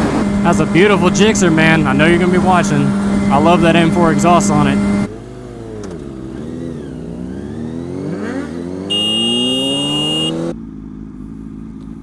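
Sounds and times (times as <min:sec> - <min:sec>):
motorcycle engine accelerating: 0:00.0 - 0:12.0
shrill high-pitched tone: 0:08.9 - 0:10.4.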